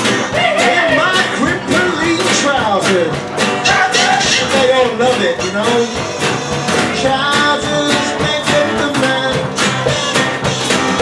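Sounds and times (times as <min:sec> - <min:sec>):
acoustic guitar strumming: 0:00.0 - 0:11.0
drum kit: 0:00.0 - 0:11.0.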